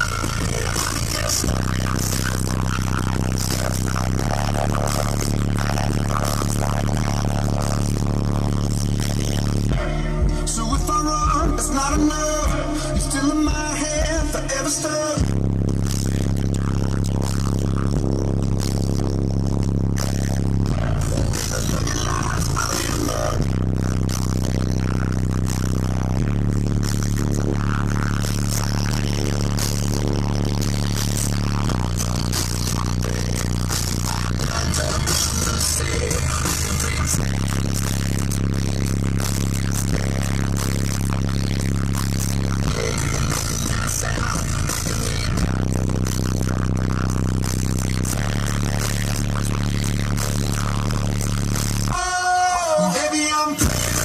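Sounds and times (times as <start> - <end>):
deep bass music through subwoofers: 0.0 - 54.0.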